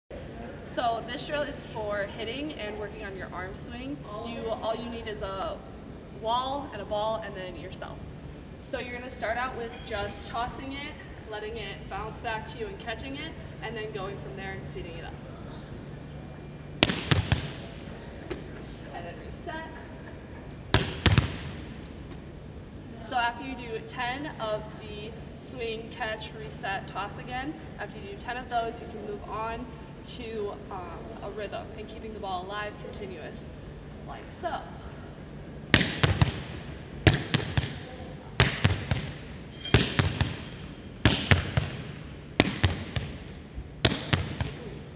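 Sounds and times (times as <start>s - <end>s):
ball bouncing off floor and wall: 16.8s - 17.7s, 20.7s - 22.2s, 35.7s - 44.7s
volleyball smacks echoing: 16.8s - 18.6s, 20.7s - 22.2s, 35.7s - 44.8s.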